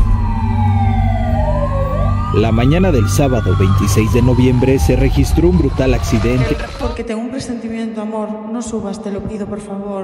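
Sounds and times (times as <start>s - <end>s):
emergency vehicle siren wailing: 0.0s - 7.0s.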